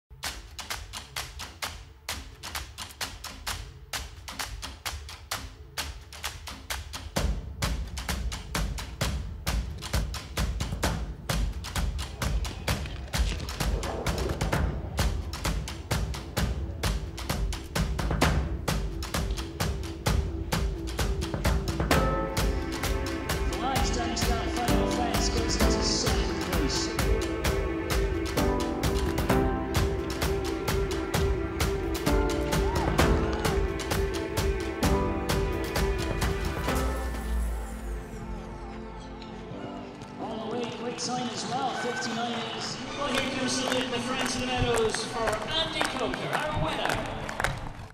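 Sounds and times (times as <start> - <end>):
percussive beat: 0.1 - 37.3
heavy bass layer: 13.2 - 38.6.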